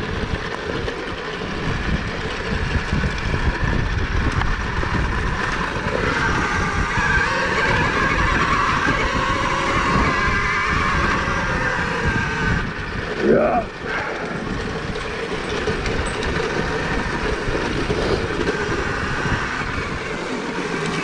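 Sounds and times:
dirt bike rattling over rough ground: 0.0 - 21.0
electric motor whine: 0.0 - 21.0.

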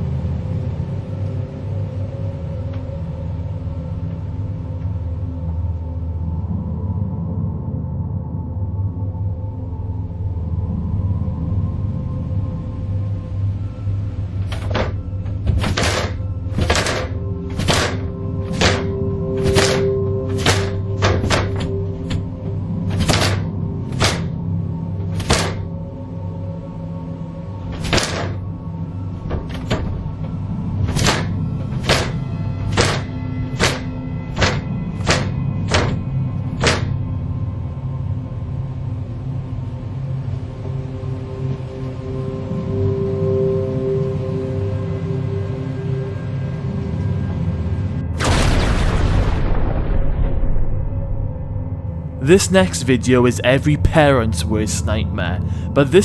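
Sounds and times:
low steady drone: 0.0 - 56.0
cinematic boom: 48.2 - 51.7.

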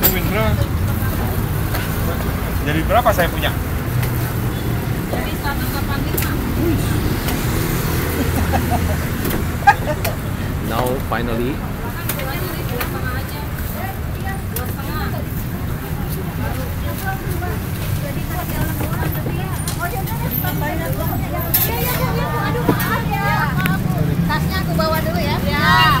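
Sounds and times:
low rumble of traffic: 0.0 - 26.0
voices chattering: 0.0 - 26.0.

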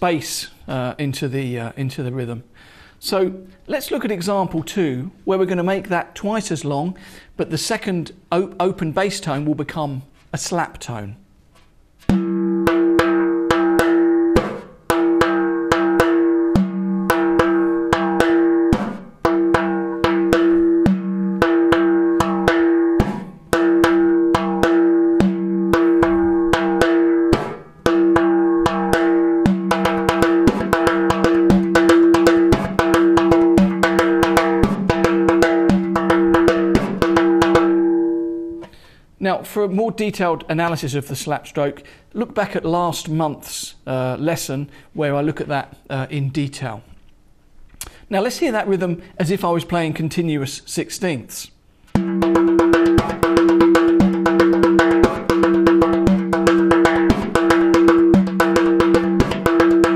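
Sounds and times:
hand-played frame drum: 12.0 - 38.7, 51.9 - 59.9.

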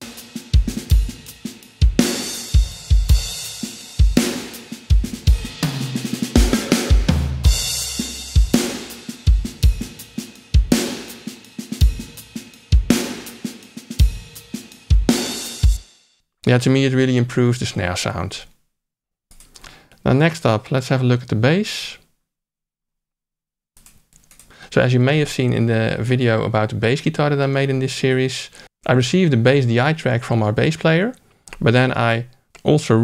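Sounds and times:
drum kit playing a steady beat: 0.0 - 15.9.

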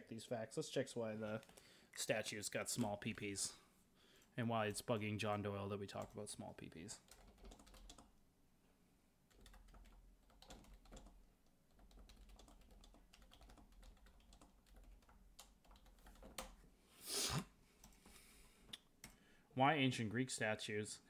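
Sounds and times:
typing on computer keyboard: 7.0 - 8.1, 9.3 - 16.6.

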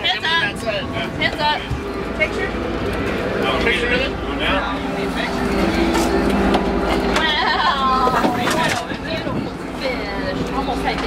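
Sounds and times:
boat engines droning: 0.0 - 11.0.

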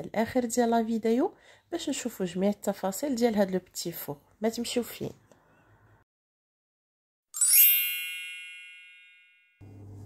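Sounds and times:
bright metallic chime: 7.4 - 9.6.

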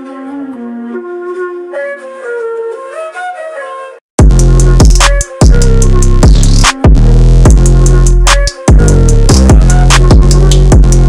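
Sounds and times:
flute-like lead melody: 0.0 - 11.0.

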